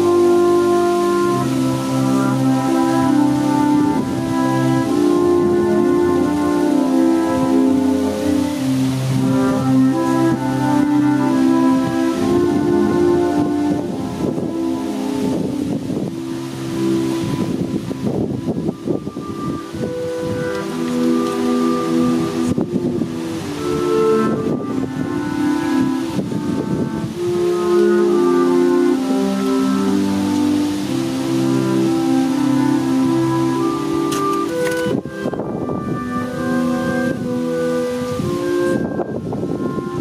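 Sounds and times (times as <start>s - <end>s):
wind band playing held chords: 0.0s - 40.0s.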